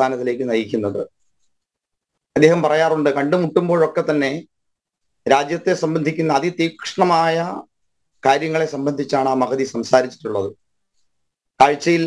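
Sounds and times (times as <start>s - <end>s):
man speaking: 0.0s - 1.2s, 2.3s - 4.5s, 5.2s - 10.6s, 11.6s - 12.0s.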